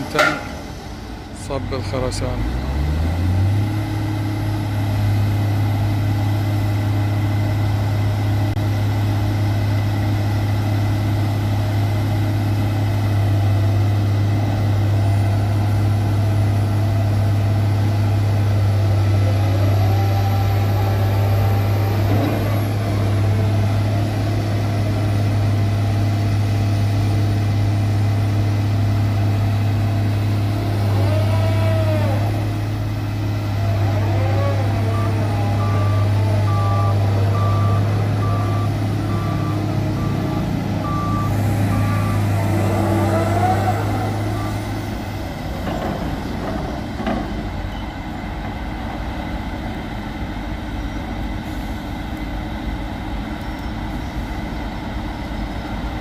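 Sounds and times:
diesel engine humming: 0:00.0 - 0:56.0.

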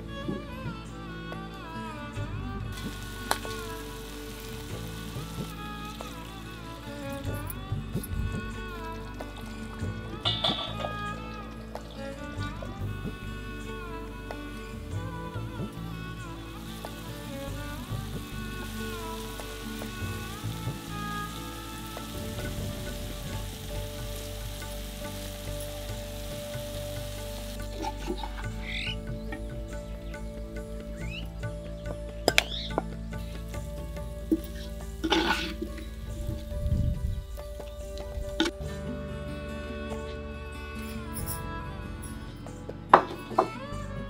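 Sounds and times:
chicken sizzling in frying: 0:02.8 - 0:07.0.

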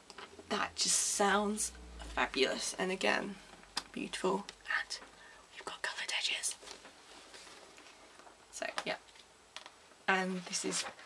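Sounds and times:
woman whispering softly: 0:04.4 - 0:06.6.

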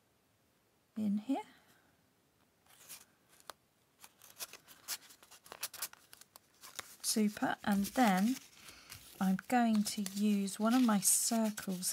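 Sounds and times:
paper rustle: 0:02.7 - 0:11.9.

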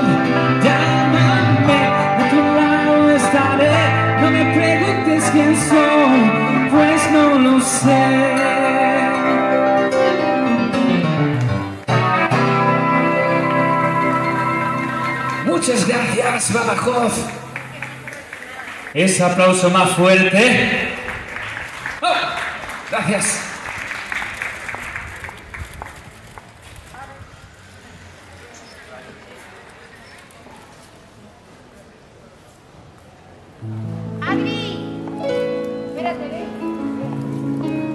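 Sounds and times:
man singing: 0:00.0 - 0:10.4
guitar: 0:00.0 - 0:18.2, 0:33.6 - 0:37.9
keyboard: 0:00.0 - 0:18.5, 0:33.6 - 0:37.9
audience clapping: 0:16.6 - 0:19.7, 0:20.4 - 0:26.7.

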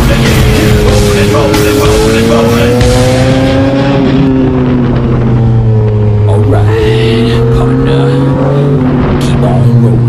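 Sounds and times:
motorcycle engine running: 0:00.0 - 0:10.0
wind rushing over microphone: 0:02.2 - 0:10.0.

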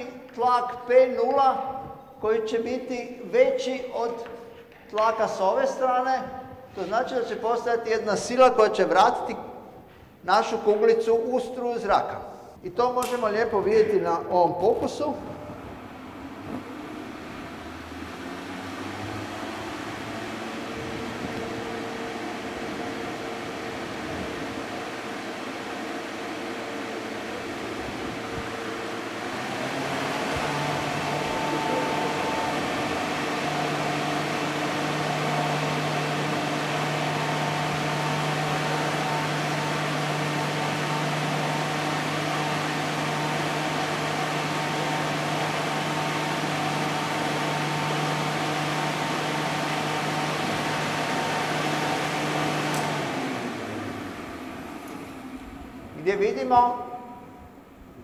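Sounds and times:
blower motor hum: 0:13.0 - 0:58.0.

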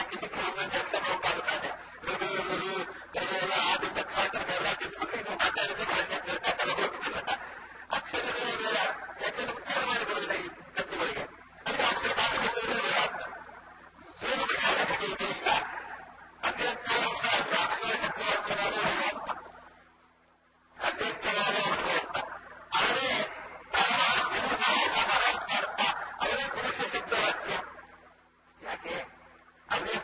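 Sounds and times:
man speaking: 0:00.0 - 0:19.4, 0:20.8 - 0:27.8, 0:28.6 - 0:30.0.

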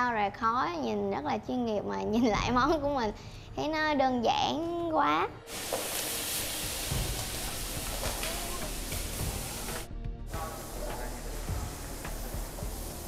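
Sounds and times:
background music: 0:00.0 - 0:13.0
food sizzling in frying pan: 0:05.5 - 0:13.0
quiet kitchen hiss: 0:05.5 - 0:13.0.

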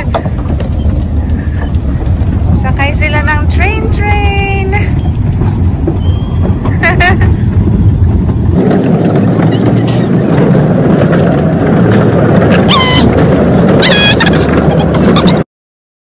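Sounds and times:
loud steady rumbling: 0:00.0 - 0:15.4
gull calls: 0:12.6 - 0:13.2, 0:13.8 - 0:15.4.

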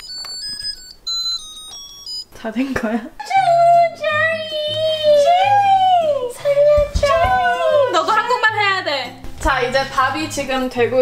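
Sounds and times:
rice cooker beeping melody: 0:00.0 - 0:02.4.

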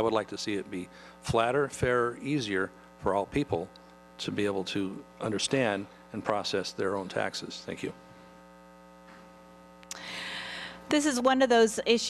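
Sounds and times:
faint electrical mains hum: 0:00.0 - 0:12.0.

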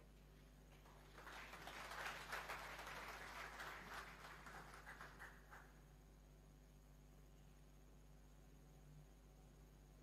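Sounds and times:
audience applauding: 0:00.7 - 0:05.8.

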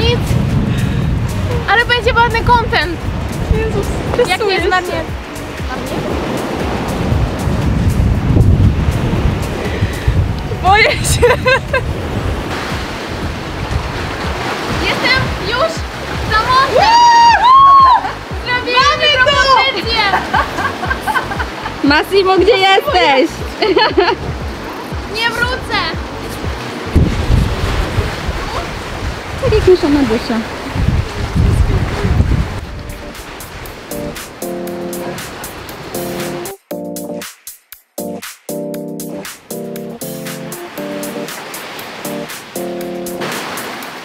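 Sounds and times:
music: 0:00.0 - 0:12.0, 0:12.6 - 0:28.1, 0:31.5 - 0:44.0
wind buffeting microphone: 0:00.0 - 0:34.4
sea surf rushing: 0:00.0 - 0:44.0.

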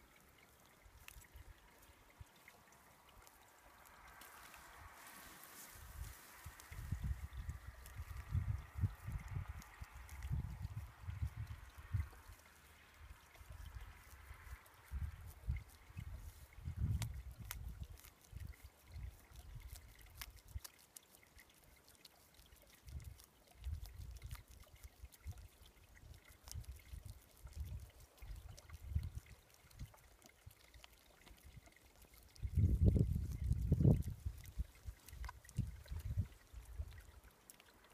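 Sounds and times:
low rumbling surges of water: 0:00.0 - 0:17.6.

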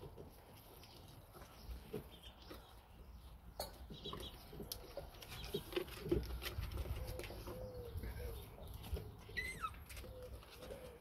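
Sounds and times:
puppies chewing on wood: 0:00.0 - 0:11.0
puppy calls: 0:09.2 - 0:11.0.

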